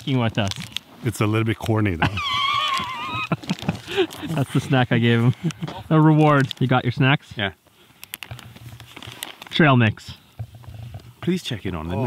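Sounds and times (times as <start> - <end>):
man laughing high-pitched: 2.0 - 4.6.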